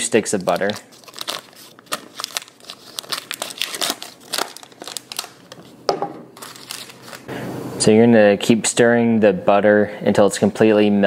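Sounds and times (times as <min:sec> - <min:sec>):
paper wrapper crinkling and tearing: 0:00.2 - 0:05.8, 0:06.4 - 0:07.3.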